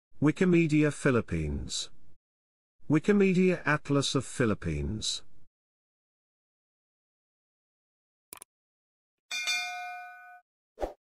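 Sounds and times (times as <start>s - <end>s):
notification bell ding: 9.3s - 10.4s.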